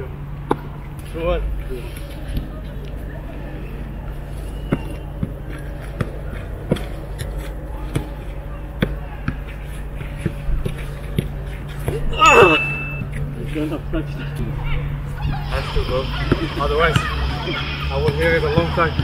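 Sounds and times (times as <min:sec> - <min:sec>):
low background hum: 0:00.0 - 0:18.9.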